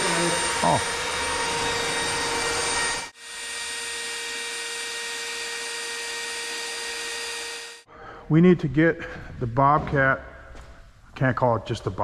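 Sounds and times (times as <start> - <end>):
cordless drill boring into steel: 0.0 - 7.9.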